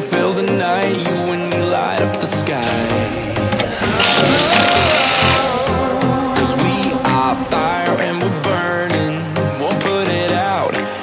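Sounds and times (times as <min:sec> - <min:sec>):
background music: 0:00.0 - 0:11.0
impact wrench running: 0:03.4 - 0:06.0.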